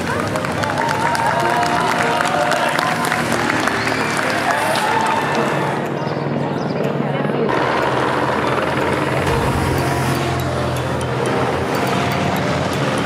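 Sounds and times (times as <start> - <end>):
helicopter overhead: 0.0 - 13.0
spectators talking: 0.0 - 13.0
motorcycle engine approaching: 7.5 - 13.0
low hum: 8.7 - 12.1.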